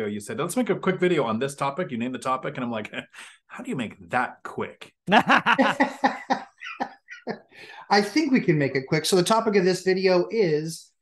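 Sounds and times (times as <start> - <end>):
men chuckling: 5.1 - 7.6.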